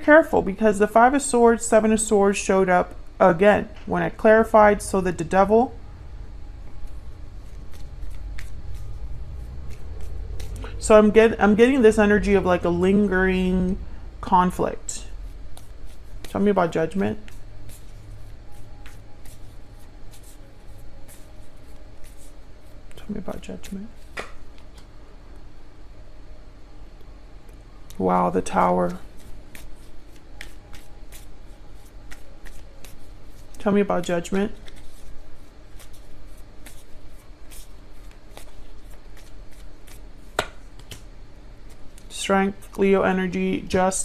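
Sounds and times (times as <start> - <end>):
steady low hum: 0.0 - 44.0
cards shuffling: 6.7 - 10.7, 15.3 - 24.9, 28.6 - 42.7.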